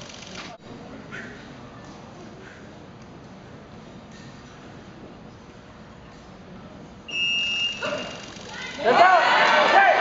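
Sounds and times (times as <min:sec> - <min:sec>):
competition hall background: 0:00.0 - 0:10.0.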